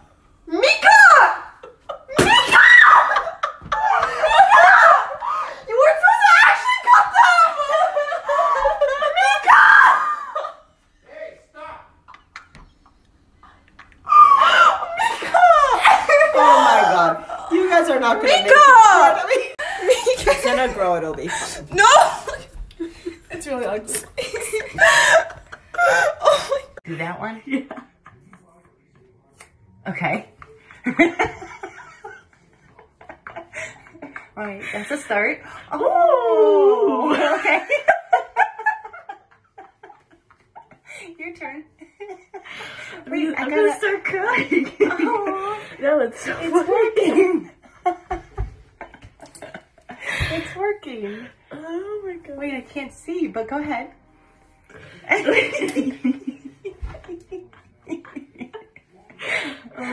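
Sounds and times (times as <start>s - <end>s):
women laughing hard: 1.6s - 10.6s, 14.0s - 17.4s, 18.1s - 23.2s, 23.9s - 26.9s, 36.8s - 40.9s
girl shrieking: 2.2s - 3.2s, 9.3s - 10.4s, 14.1s - 16.9s.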